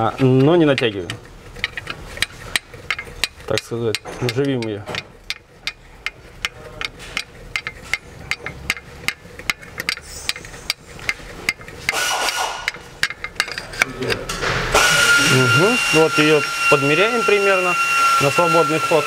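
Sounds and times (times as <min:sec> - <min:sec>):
hand tools clicking on metal: 0:00.0 - 0:15.0
high-pitched whine with hiss: 0:14.8 - 0:19.0.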